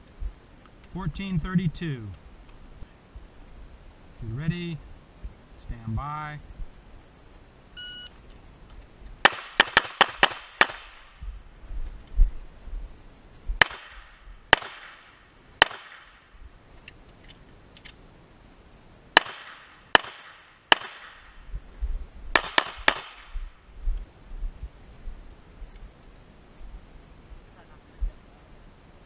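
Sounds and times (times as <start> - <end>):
pistol shots with echo: 9.2 - 11.1, 13.6 - 16.2, 19.2 - 21.4, 22.4 - 23.4.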